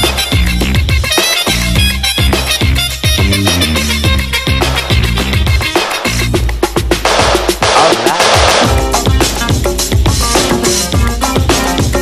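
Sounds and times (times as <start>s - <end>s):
disco record with steady beat: 0.0s - 12.0s.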